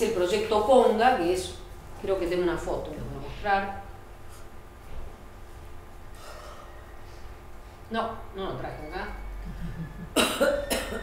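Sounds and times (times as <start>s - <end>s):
person coughing: 10.2s - 11.0s.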